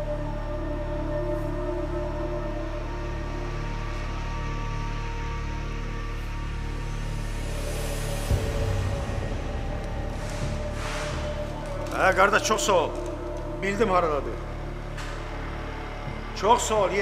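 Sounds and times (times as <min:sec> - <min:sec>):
tense dramatic music drones: 0:00.0 - 0:17.0.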